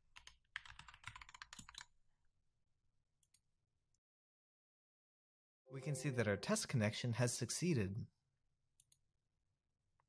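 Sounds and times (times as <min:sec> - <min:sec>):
keyboard typing: 0:00.1 - 0:01.9.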